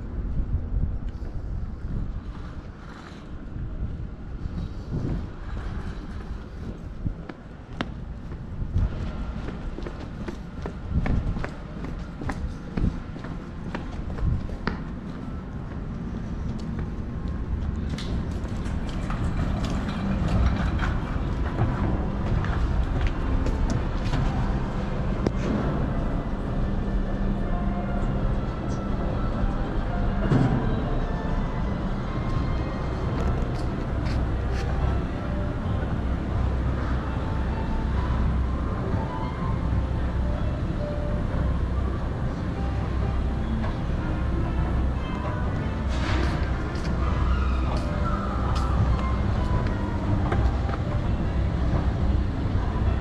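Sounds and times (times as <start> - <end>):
car park background noise: 0.0 - 53.0
footsteps walking: 33.1 - 34.8.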